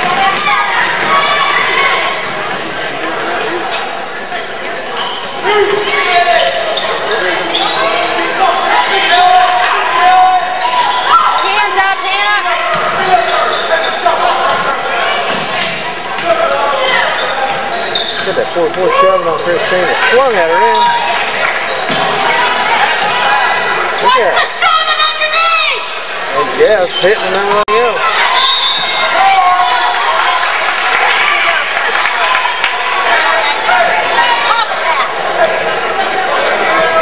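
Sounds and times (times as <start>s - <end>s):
overlapping voices and shouts: 27.9s - 37.0s.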